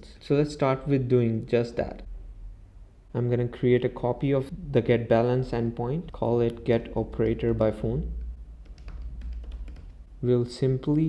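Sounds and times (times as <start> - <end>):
low steady hum: 0.0 - 11.0
keyboard and mouse clicks: 6.0 - 10.0.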